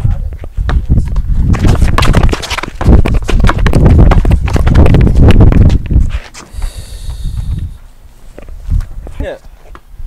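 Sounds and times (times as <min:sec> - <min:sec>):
basketball bouncing on concrete: 0:00.6 - 0:06.0
heavy low rumble: 0:04.7 - 0:09.0.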